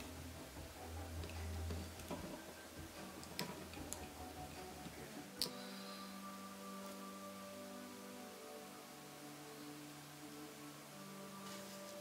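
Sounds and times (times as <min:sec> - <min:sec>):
soft music with held tones: 0:00.0 - 0:12.0.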